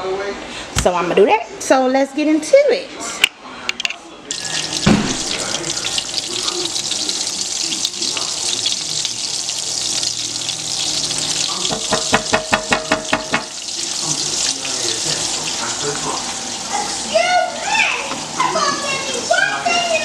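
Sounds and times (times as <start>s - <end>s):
oil and butter sizzling: 4.2s - 20.0s.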